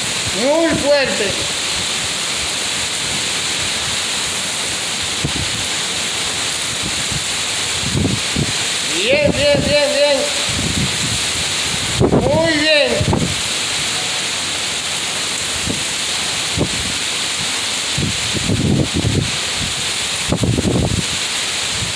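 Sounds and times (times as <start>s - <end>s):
wind and driving rain: 0.0s - 21.9s
wind gusts buffeting microphone: 5.0s - 5.8s, 6.5s - 13.9s, 15.4s - 21.9s.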